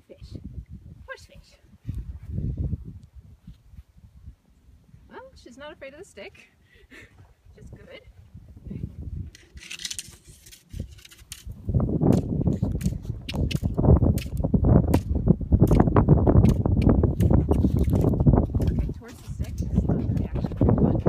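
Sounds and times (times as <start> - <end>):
microphone rumbling and crackling: 1.7 - 5.1, 7.0 - 21.0
sharp clicks: 12.1 - 18.9.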